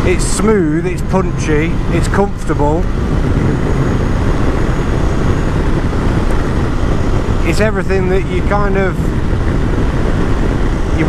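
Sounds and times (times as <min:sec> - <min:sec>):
motorcycle engine drone: 0:00.0 - 0:11.0
wind rush: 0:00.0 - 0:11.0.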